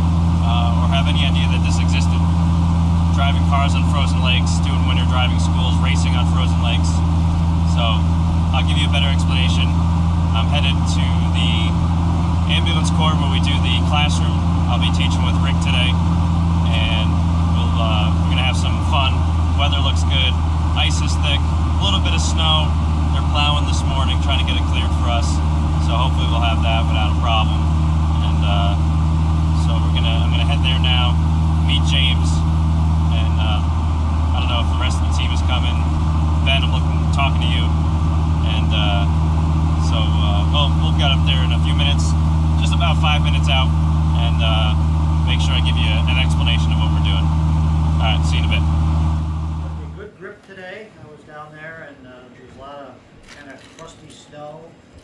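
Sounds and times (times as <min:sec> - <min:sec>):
car engine and road noise: 0:00.0 - 0:50.1.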